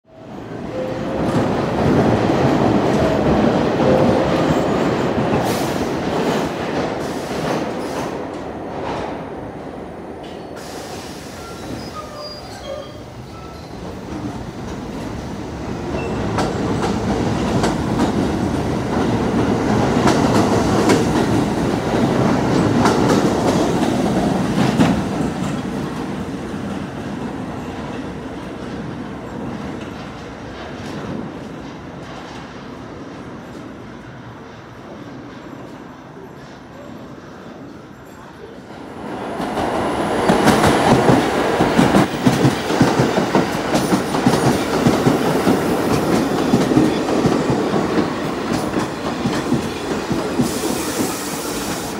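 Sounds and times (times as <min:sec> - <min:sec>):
subway train wheels rumbling: 0:00.0 - 0:51.9
wheel squeals: 0:11.4 - 0:13.9.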